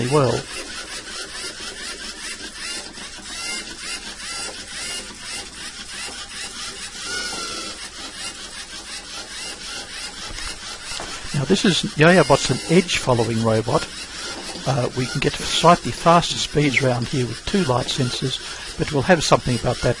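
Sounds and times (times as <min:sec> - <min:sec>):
robot motors and gears whirring: 0:00.0 - 0:20.0.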